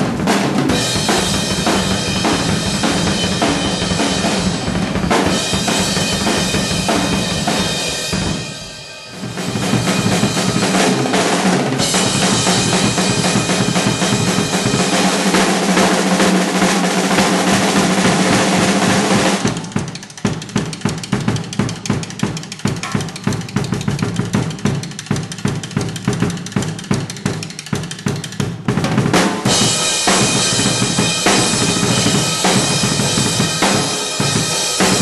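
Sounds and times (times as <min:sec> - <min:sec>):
cymbals crashing: 0:00.0 - 0:19.7, 0:29.2 - 0:35.0
rapid drum strokes: 0:00.0 - 0:35.0.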